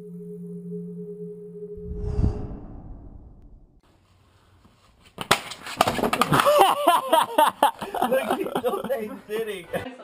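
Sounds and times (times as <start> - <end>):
plastic chair cracking and clattering: 5.2 - 6.6
loud laughter: 6.3 - 9.1.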